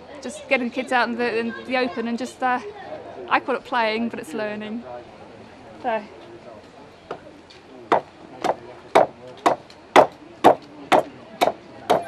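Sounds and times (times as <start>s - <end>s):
adze chopping into timber plank: 7.9s - 12.0s.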